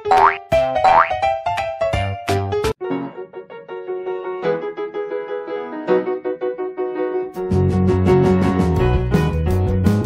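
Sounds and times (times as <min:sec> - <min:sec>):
cartoon boing effects: 0:00.0 - 0:01.2.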